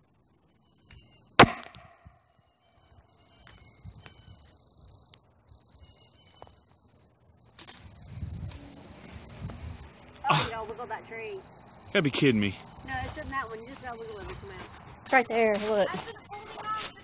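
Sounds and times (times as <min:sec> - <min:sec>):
high insect call: 0:00.0 - 0:17.0
rocket launcher bang: 0:01.4 - 0:02.0.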